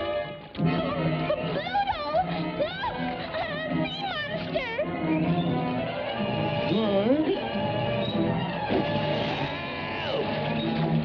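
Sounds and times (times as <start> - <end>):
cartoon soundtrack music: 0.0 - 11.0.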